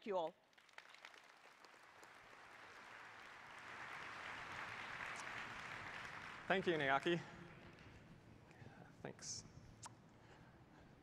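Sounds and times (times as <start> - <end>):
large audience applauding: 0.5 - 8.0.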